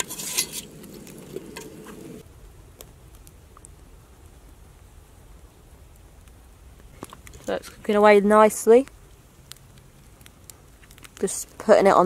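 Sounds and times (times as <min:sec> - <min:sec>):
food stirred in metal pot: 0:00.0 - 0:02.2
faint outdoor ambience: 0:00.0 - 0:12.0.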